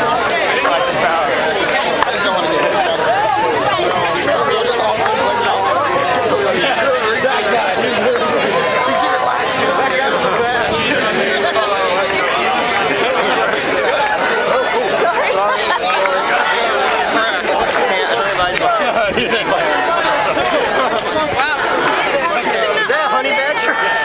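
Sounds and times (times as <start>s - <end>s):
crowd babble: 0.0s - 24.0s.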